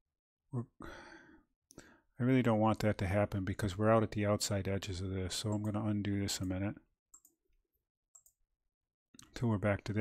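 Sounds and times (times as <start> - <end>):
man breathing out: 0.8 - 2.0.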